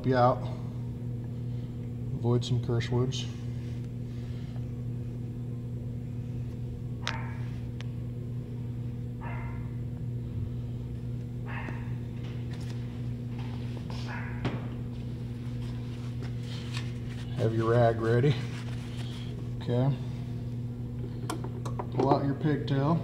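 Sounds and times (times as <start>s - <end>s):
steady low hum: 0.0s - 23.0s.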